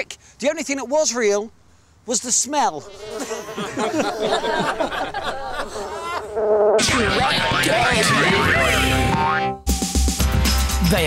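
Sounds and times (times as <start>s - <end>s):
music with heavy bass: 6.8s - 11.0s.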